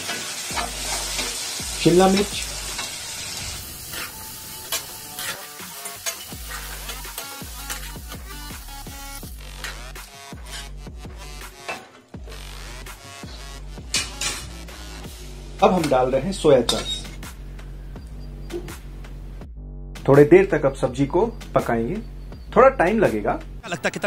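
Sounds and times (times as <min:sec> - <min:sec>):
vegetables sizzling: 0:00.0 - 0:10.7
background music with beat: 0:03.5 - 0:24.0
spatula scraping through vegetables: 0:09.4 - 0:10.8.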